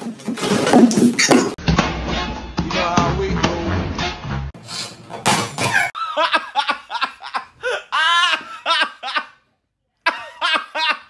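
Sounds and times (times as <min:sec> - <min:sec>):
high-pitched laughter: 0:05.9 - 0:09.4.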